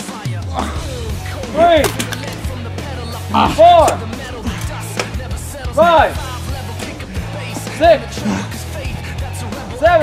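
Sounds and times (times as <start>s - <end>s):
background music with bass line: 0.0s - 10.0s
man shouting drawn-out calls: 3.2s - 4.0s.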